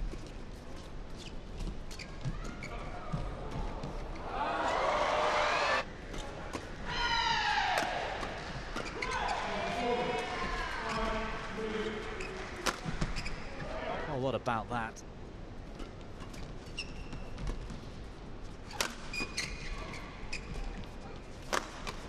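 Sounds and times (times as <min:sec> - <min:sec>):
shoes squeaking on court: 0:00.1 - 0:04.3, 0:08.7 - 0:09.4, 0:10.2 - 0:11.2, 0:12.0 - 0:13.6, 0:15.8 - 0:17.9, 0:18.6 - 0:22.0.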